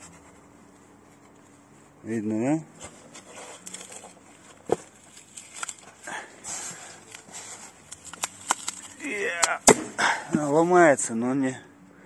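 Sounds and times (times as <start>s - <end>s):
foam board creaking and cracking: 3.2s - 6.0s, 6.6s - 9.7s
foam board snapping: 7.9s - 10.0s.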